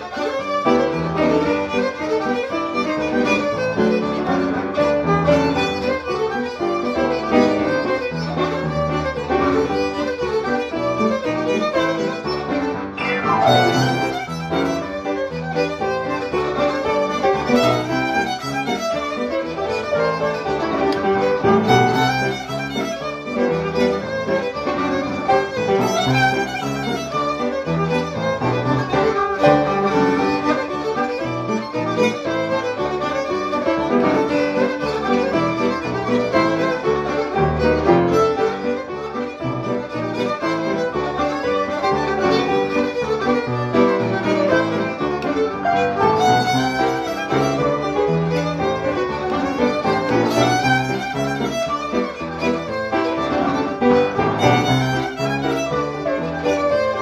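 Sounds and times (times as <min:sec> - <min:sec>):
electric violin playing a reel: 0:00.0 - 0:57.0
piano accompaniment: 0:00.0 - 0:57.0.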